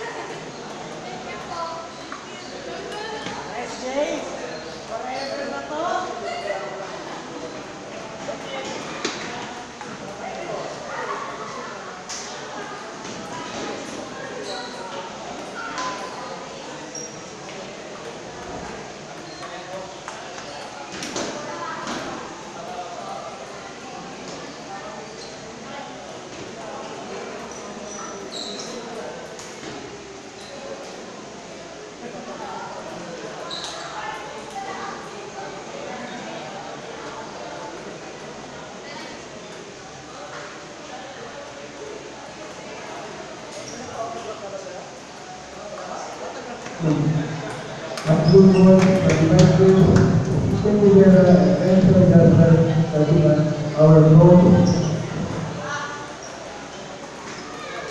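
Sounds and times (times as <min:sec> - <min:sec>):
background chatter of voices: 0:00.0 - 0:57.9.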